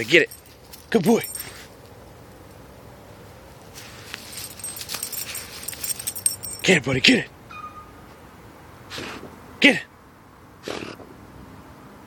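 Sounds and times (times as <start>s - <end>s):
dog paws scraping soil: 0.0s - 2.0s, 3.5s - 6.8s
collar tag jingling: 0.0s - 2.8s, 3.6s - 7.3s.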